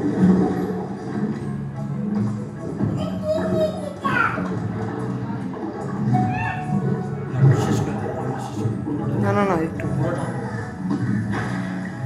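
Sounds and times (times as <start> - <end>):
background music: 0.0 - 12.0
children chattering: 3.0 - 8.0.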